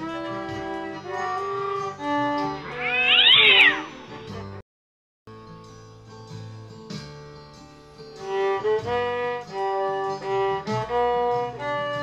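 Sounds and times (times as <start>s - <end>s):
loud high wail: 2.5s - 4.4s.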